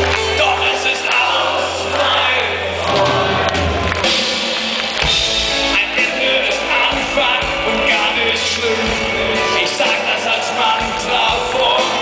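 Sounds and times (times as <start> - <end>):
rock band playing: 0.0 - 12.0
man singing into a microphone: 0.2 - 2.7, 5.7 - 12.0.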